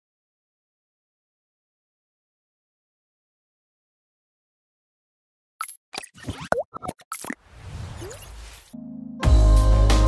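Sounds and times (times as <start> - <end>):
cartoon plops pops and blips: 5.6 - 7.4.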